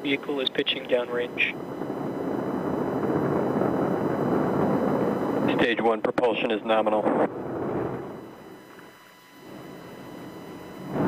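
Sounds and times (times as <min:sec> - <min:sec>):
rocket engines rumbling roar: 0:00.0 - 0:08.8, 0:09.4 - 0:11.0.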